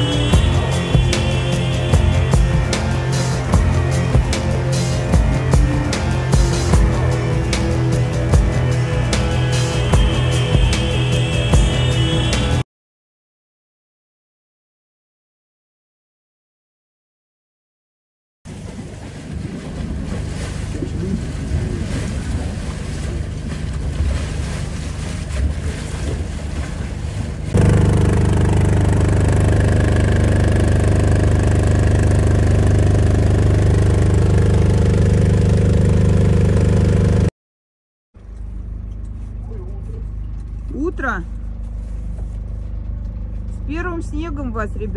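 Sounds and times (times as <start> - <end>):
boat engine running: 0.0 - 12.6, 18.5 - 37.3, 38.2 - 44.9
wind and water noise: 18.5 - 37.0.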